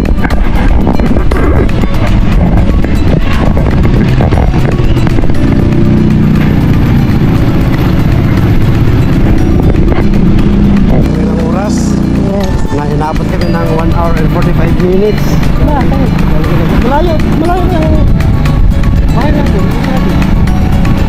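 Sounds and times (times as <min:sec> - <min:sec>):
motorcycle engines running: 0:00.0 - 0:21.0
wind rumbling on microphone: 0:00.0 - 0:21.0.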